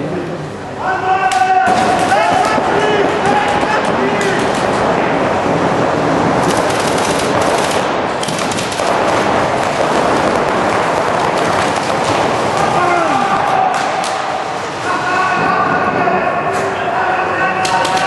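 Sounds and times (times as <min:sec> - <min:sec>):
people shouting: 0:00.8 - 0:04.5, 0:12.4 - 0:18.0
paintball markers firing rapidly: 0:06.3 - 0:12.8, 0:17.6 - 0:18.0.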